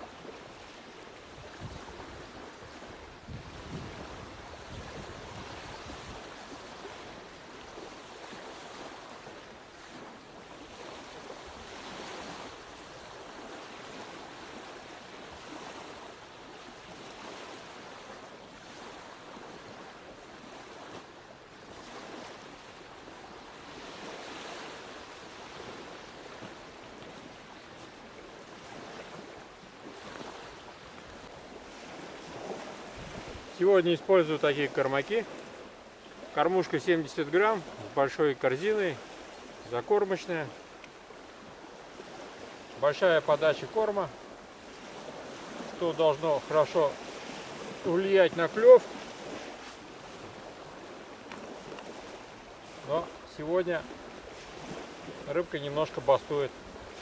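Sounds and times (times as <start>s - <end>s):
waves lapping on gravel shore: 0.0s - 57.0s
wind buffeting microphone: 1.4s - 6.3s, 31.1s - 33.6s.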